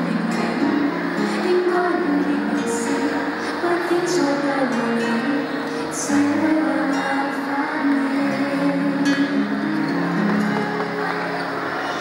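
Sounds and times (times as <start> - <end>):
woman singing into microphone: 0.0 - 10.1.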